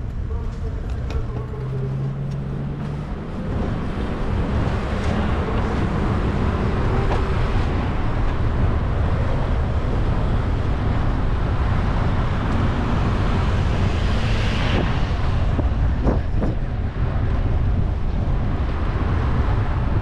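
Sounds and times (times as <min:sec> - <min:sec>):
tyre and road noise: 0:00.0 - 0:20.0
wind rumbling on microphone: 0:00.0 - 0:20.0.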